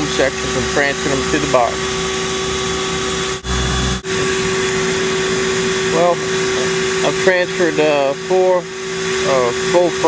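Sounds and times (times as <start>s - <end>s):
vacuum motor hum: 0.0s - 10.0s
low rumble: 2.5s - 4.5s.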